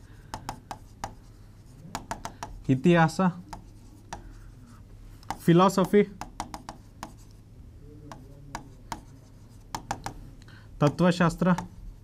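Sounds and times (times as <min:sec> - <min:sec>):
marker pen on whiteboard: 0:00.0 - 0:12.0
person speaking: 0:00.3 - 0:12.0.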